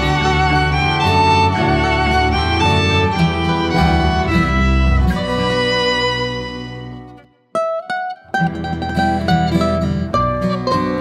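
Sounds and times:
bass: 0.0 - 7.3, 8.3 - 11.0
fiddle: 0.0 - 11.0
strummed acoustic guitar: 0.0 - 11.0.

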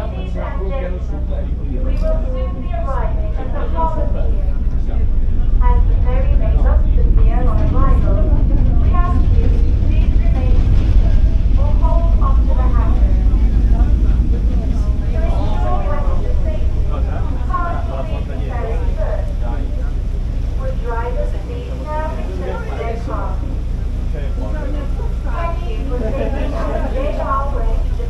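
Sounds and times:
ferry engine low rumble: 0.0 - 28.0
people talking: 0.0 - 28.0.

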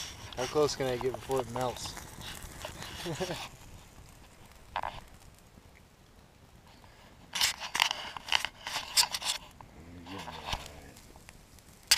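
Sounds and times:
rustling scraping clicks: 7.3 - 9.6.

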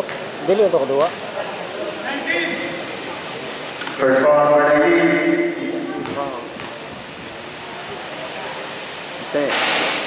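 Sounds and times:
crowd noise in a gym: 0.0 - 10.0.

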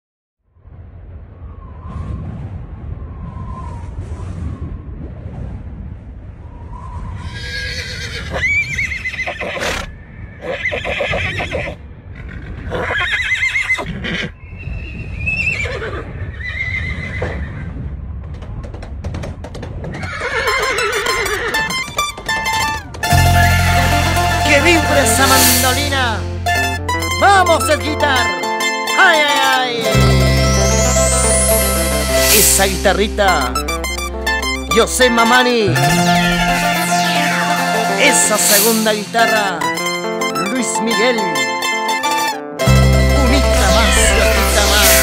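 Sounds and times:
horses neighing and whinnying: 7.3 - 14.4, 19.9 - 22.0
mandolin band playing: 21.1 - 45.0.

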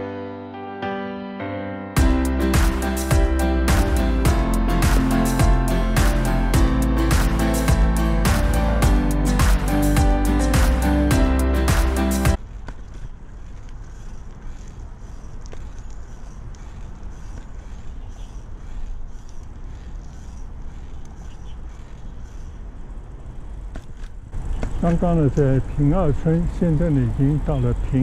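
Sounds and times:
background music: 0.0 - 12.4
bicycle tyres rolling on concrete: 11.7 - 28.0.

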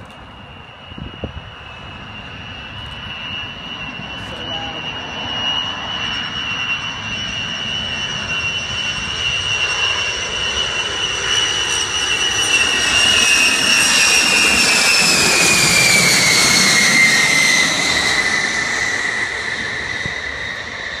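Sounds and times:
jet engines whining overhead: 0.0 - 21.0.

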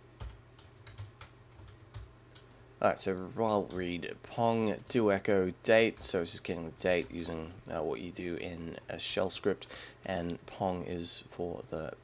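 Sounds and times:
computer keyboard keystrokes: 0.2 - 2.5.

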